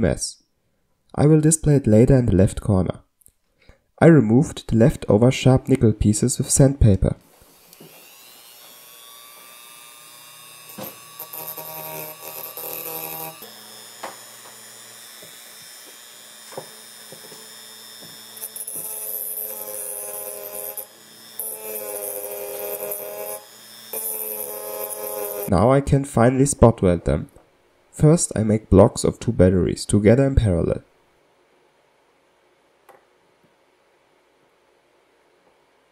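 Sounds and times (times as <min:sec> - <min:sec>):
rotary tool whining: 0:07.3 - 0:25.5.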